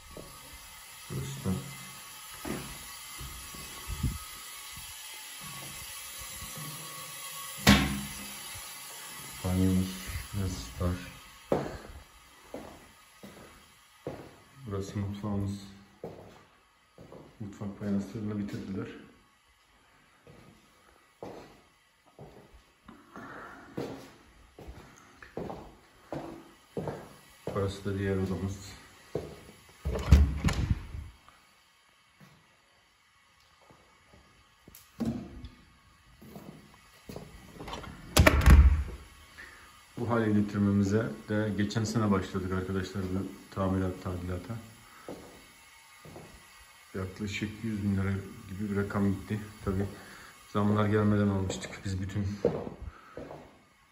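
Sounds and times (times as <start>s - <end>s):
soft footsteps on laminate floor: 11.5s - 14.5s, 16.0s - 17.4s, 21.2s - 22.7s, 23.7s - 27.7s, 29.1s - 30.1s, 36.2s - 37.8s, 46.0s - 46.4s, 51.5s - 53.6s.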